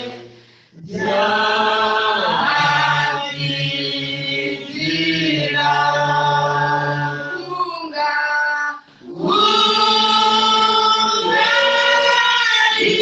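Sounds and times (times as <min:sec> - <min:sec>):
congregation singing a hymn: 0:00.0 - 0:07.6, 0:09.0 - 0:13.0.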